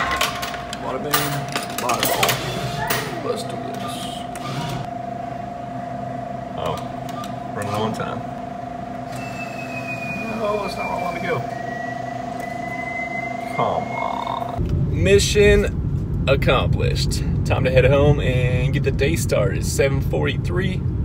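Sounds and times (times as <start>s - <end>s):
steady electronic hum: 2.5s - 21.0s
faint gliding whines: 8.6s - 14.6s.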